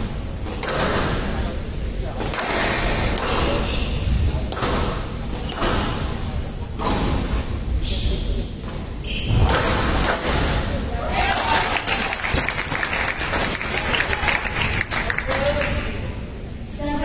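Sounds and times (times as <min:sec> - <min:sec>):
squash ball thuds: 0:00.0 - 0:01.3, 0:04.4 - 0:06.2
murmur of crowd voices: 0:00.0 - 0:17.0.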